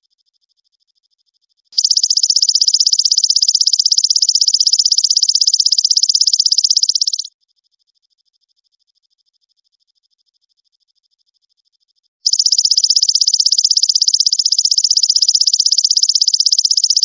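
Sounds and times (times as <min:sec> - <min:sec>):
faint rapid chirping: 0:00.2 - 0:17.0
insect fast trill: 0:01.8 - 0:07.3, 0:12.2 - 0:17.0.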